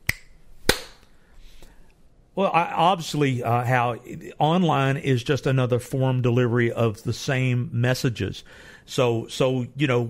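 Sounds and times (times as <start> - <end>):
sharp snaps: 0.0 - 1.1.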